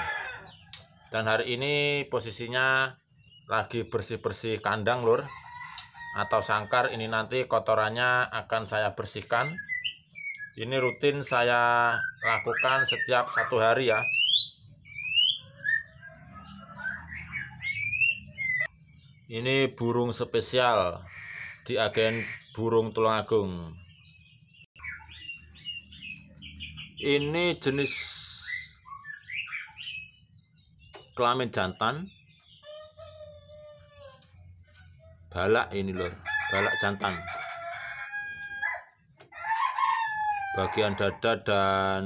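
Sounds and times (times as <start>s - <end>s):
rooster crowing: 0.0s - 0.6s, 5.1s - 7.2s, 35.9s - 41.5s
bird whistling calls: 9.5s - 11.2s, 11.8s - 18.7s, 27.9s - 30.3s.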